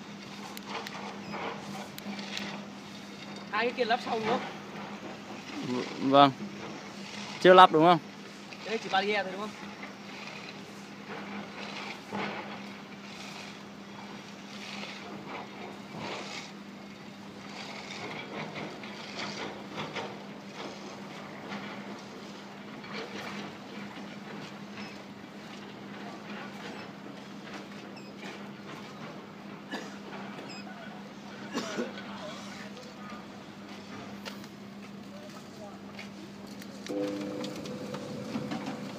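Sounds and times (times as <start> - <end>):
gate motor humming: 36.8 - 38.9.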